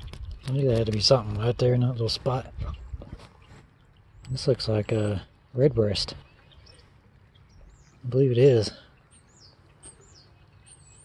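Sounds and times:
songbird chirps: 0.0 - 11.0.

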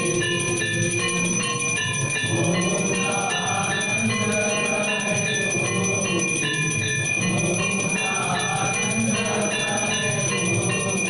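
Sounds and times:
temple bells ringing: 0.0 - 11.0.

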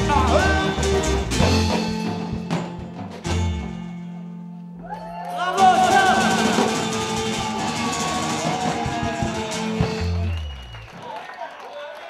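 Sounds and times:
live band playing: 0.0 - 10.9.

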